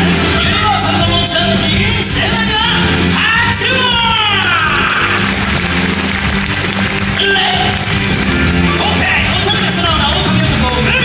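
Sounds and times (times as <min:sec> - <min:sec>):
live rock and roll band: 0:00.0 - 0:11.0
steady bass line: 0:00.0 - 0:11.0.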